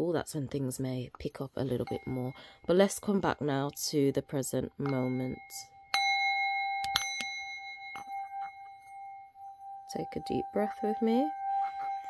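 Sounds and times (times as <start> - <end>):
metal singing bowl ringing: 1.8 - 12.0.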